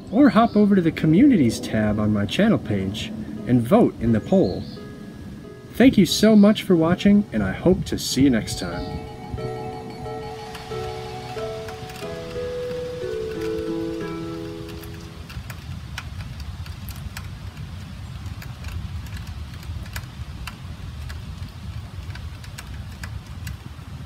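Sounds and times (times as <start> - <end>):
steady low rumble: 0.0 - 9.5
background music: 1.1 - 15.4
raindrops ticking: 8.4 - 23.7
rain falling: 9.4 - 24.0.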